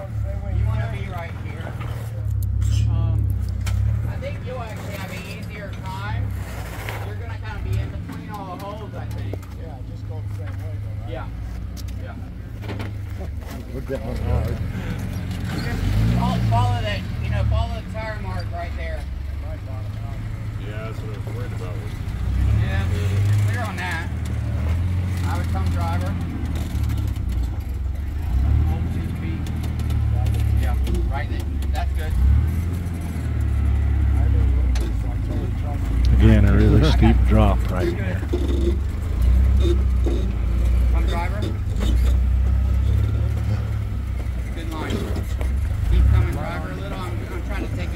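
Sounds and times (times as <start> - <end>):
people talking: 0.0 - 3.3, 4.1 - 6.3, 7.0 - 11.4, 13.2 - 21.9, 25.2 - 26.2, 34.2 - 38.5, 40.9 - 41.6, 44.6 - 47.9
vehicle engine crawling: 0.0 - 47.9.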